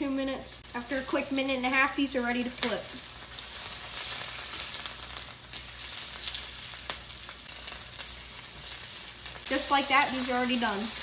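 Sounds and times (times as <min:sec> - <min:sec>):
fish sizzling in a skillet: 0:00.6 - 0:11.0.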